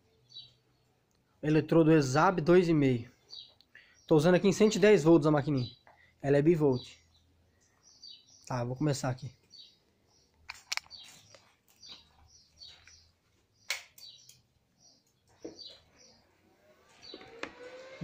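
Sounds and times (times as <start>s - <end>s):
birds chirping: 0.0s - 18.0s
sharp clicks: 10.3s - 11.4s, 13.6s - 15.4s.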